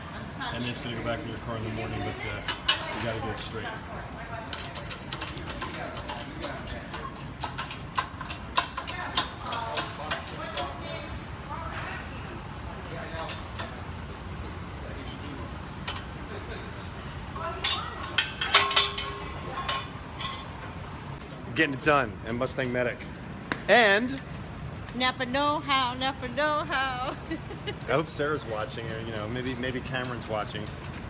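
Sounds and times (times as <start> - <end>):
faint indistinct voices: 8.6 - 20.5.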